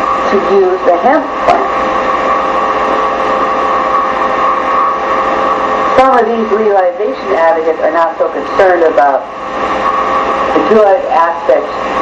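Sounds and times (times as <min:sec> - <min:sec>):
high-pitched electrical hum: 0:00.0 - 0:12.0.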